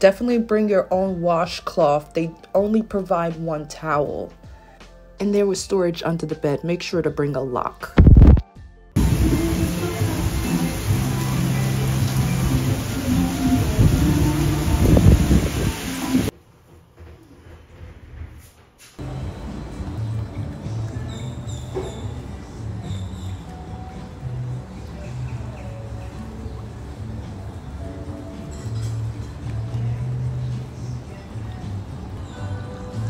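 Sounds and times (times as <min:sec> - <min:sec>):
music with low held notes: 0:00.0 - 0:16.3, 0:19.0 - 0:33.0
heavy rain hissing: 0:09.0 - 0:16.3.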